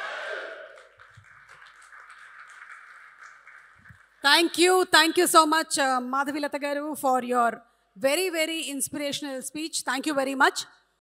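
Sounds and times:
audience applause: 0.0 - 4.2.

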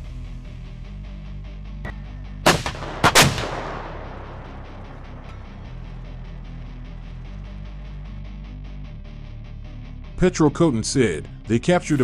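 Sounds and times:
howitzer firing blasts: 2.4 - 5.2.

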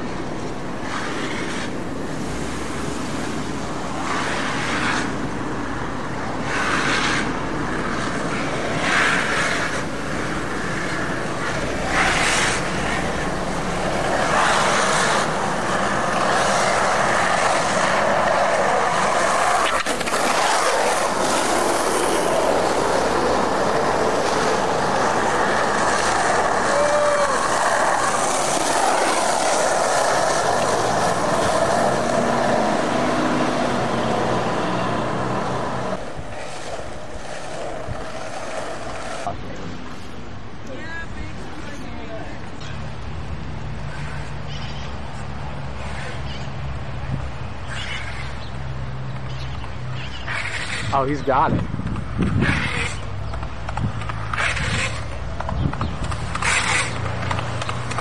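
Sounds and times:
skateboard wheels rolling on asphalt: 0.0 - 58.0.

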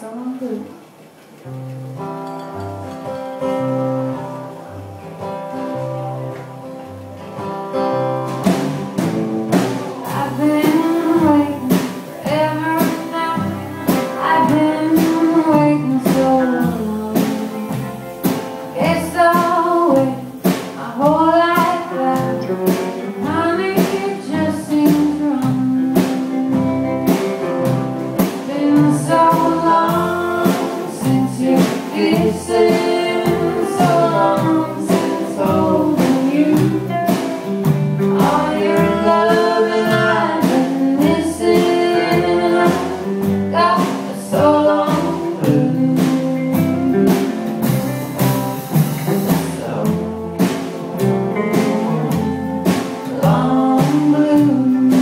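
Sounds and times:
drums: 0.0 - 55.0
blues band playing: 0.8 - 55.0
woman singing: 10.0 - 47.3, 49.0 - 55.0.

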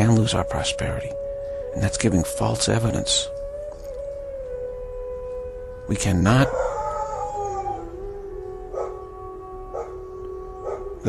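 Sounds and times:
dog howling: 0.0 - 11.0.

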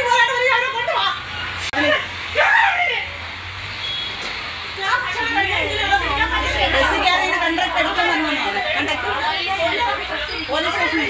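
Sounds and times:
people talking: 0.0 - 3.2, 4.8 - 11.0.

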